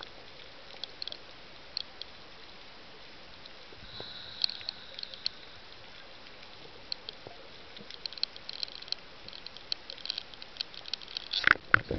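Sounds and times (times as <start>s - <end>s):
steady underwater hiss: 0.0s - 11.9s.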